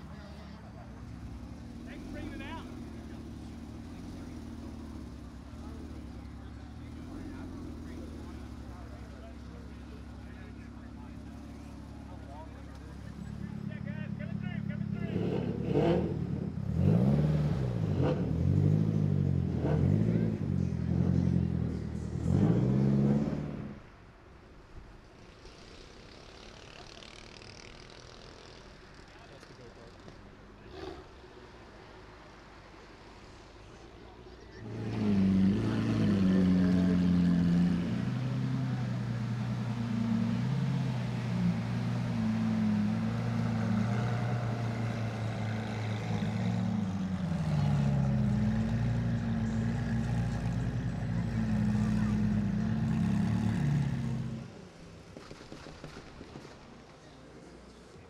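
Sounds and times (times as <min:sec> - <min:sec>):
car engine running at low revs: 0:00.0 - 0:24.0, 0:24.8 - 0:58.0
car engine revving while passing: 0:15.0 - 0:23.9, 0:34.6 - 0:54.7.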